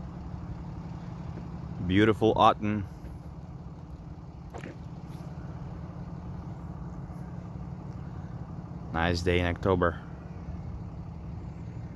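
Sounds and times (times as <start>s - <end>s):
car engine rumbling: 0.0s - 11.9s.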